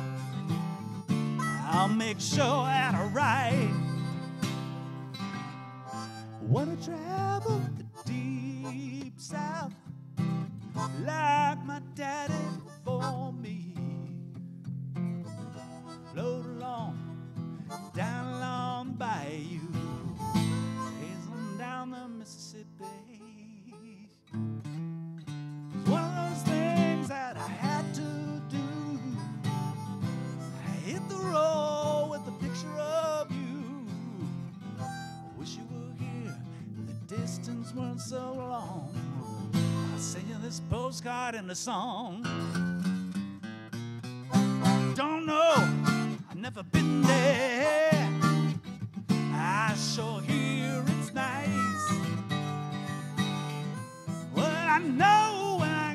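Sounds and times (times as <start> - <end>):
harmonica playing blues notes: 0.0 - 9.7, 10.7 - 14.1, 15.1 - 24.5, 25.8 - 41.2, 44.1 - 55.9
strummed acoustic guitar: 0.0 - 55.9.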